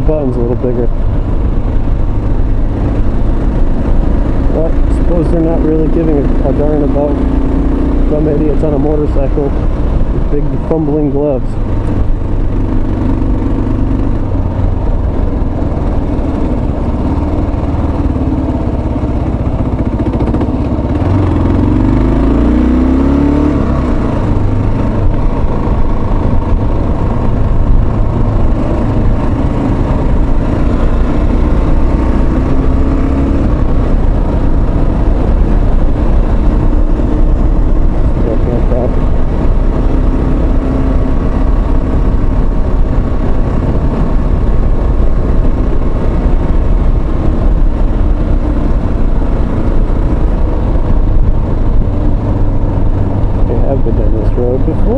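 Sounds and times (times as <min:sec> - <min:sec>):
motorcycle engine running: 0:00.0 - 0:54.9.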